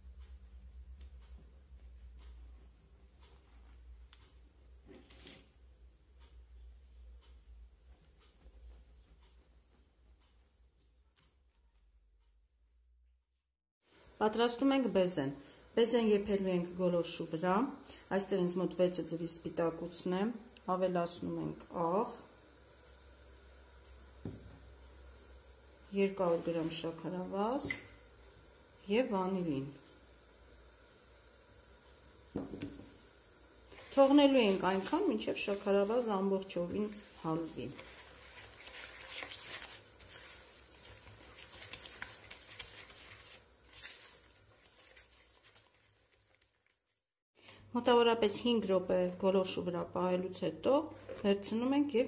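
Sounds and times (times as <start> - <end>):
low steady hum: 0.0 - 12.9, 14.0 - 46.5.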